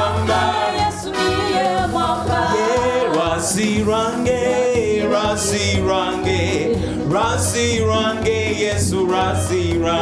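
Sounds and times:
arranger keyboard accompaniment: 0.0 - 10.0
man singing gospel song: 2.5 - 10.0.

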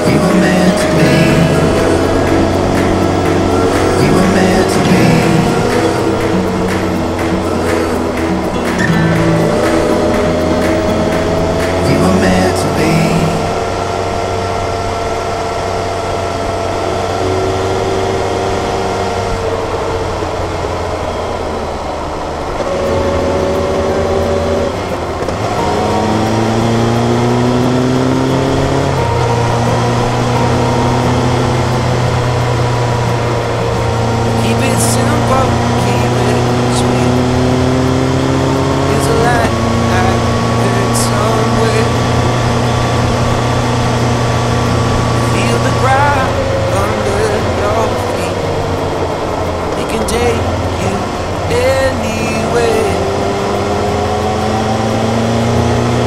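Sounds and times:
pop music with a beat: 0.0 - 13.7, 33.9 - 42.2, 45.1 - 48.5
motorcycle engine revving: 0.0 - 56.0.

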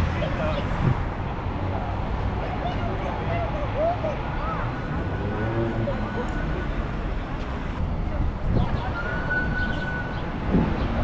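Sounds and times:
passers-by talking: 0.0 - 11.0
traffic rumble: 0.0 - 11.0.

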